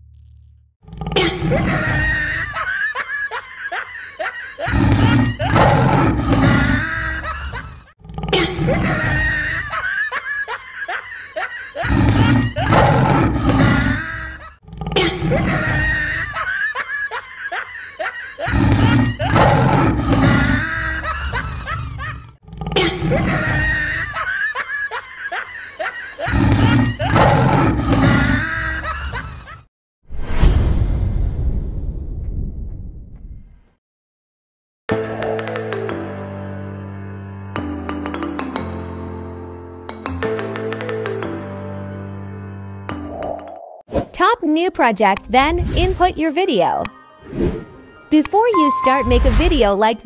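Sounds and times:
laughter: 1.3 - 4.7, 6.8 - 8.0, 8.6 - 11.8, 15.3 - 18.5, 20.6 - 26.4, 28.4 - 29.7
big cat roar: 11.9 - 14.0, 18.6 - 20.6, 26.3 - 28.4.

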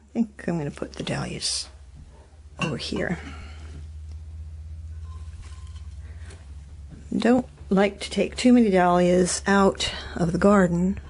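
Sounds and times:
low steady hum: 0.0 - 11.0
faint rustles: 1.7 - 7.8.

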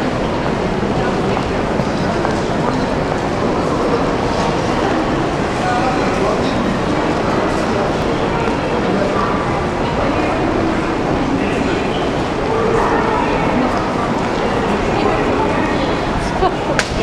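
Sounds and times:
crowd walking and talking: 0.0 - 17.0.

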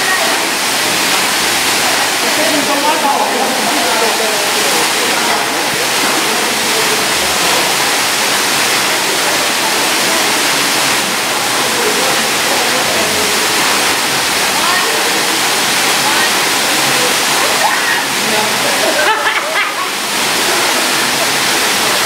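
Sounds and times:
waterfall rushing: 0.0 - 22.0.

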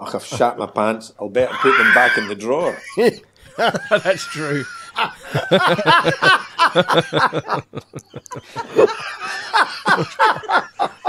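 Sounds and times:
people laughing: 1.4 - 11.0.

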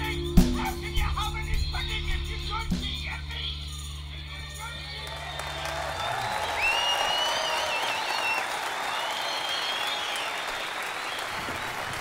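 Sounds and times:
audience applauding: 4.7 - 12.0
high wavering whistles: 5.9 - 11.4.

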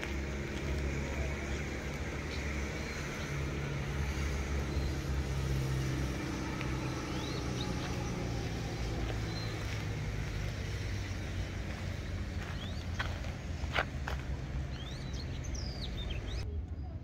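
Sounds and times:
bird chirps: 6.8 - 8.3, 12.4 - 13.2, 14.7 - 16.4.

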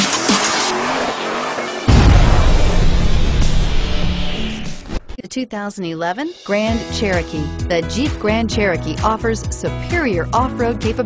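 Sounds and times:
electronic music with punchy beat: 0.0 - 1.0
car tyre squeal: 0.0 - 1.9
deep boom: 1.9 - 5.2.

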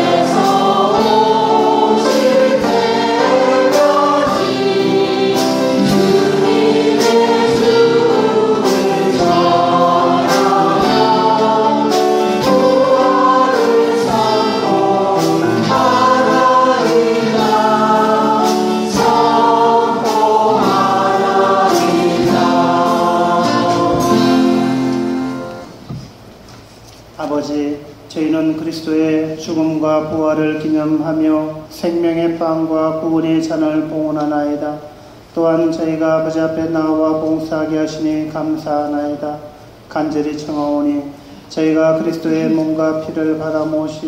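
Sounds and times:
choir singing a chant: 0.0 - 25.3.

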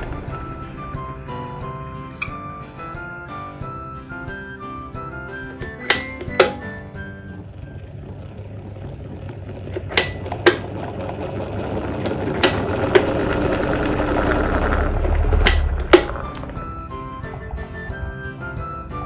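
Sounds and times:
electric fan whirring: 5.6 - 18.1
low rumble of air stream: 7.2 - 19.0.

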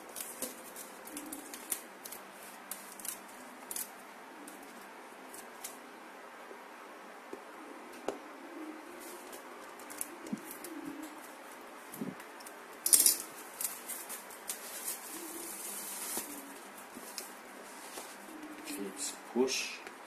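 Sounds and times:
cardboard and paper rustling: 0.0 - 3.9, 9.0 - 18.8.

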